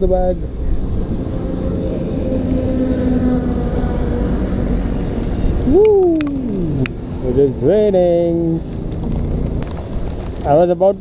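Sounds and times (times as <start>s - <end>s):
faint traffic engine hum: 0.0s - 11.0s.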